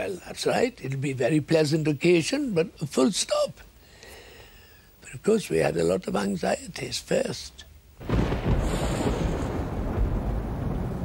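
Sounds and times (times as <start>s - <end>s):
deep rumble after a heavy boom: 8.0s - 11.0s.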